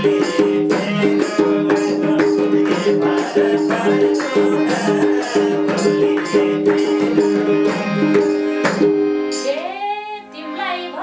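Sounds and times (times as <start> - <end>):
harmonium held chord: 0.0 - 11.0
woman singing folk melody: 9.4 - 11.0.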